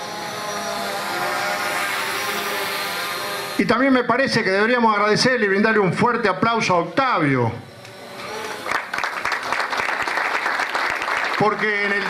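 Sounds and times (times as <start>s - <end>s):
steady engine noise: 0.0s - 12.0s.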